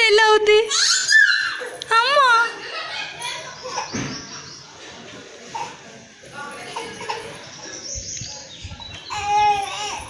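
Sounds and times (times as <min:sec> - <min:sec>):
toddler squealing: 0:00.7 - 0:01.8, 0:09.1 - 0:10.0
toddler babbling: 0:09.1 - 0:10.0.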